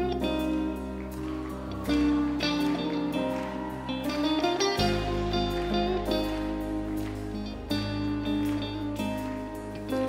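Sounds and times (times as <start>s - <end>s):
live pop band playing: 0.0s - 10.0s
plucked guitar: 0.0s - 10.0s.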